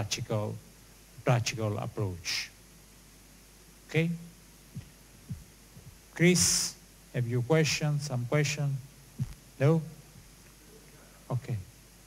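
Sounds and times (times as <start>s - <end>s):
man speaking into microphone: 0.0s - 0.6s, 1.2s - 2.6s, 3.9s - 4.3s, 6.2s - 8.9s, 9.6s - 10.0s, 10.7s - 11.7s
faint low hum: 0.0s - 12.0s
faint low thumps: 4.1s - 6.5s, 9.0s - 10.8s.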